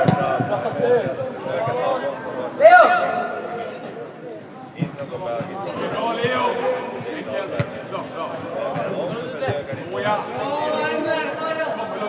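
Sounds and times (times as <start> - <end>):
ball being kicked: 0.0 - 0.8, 7.5 - 7.8.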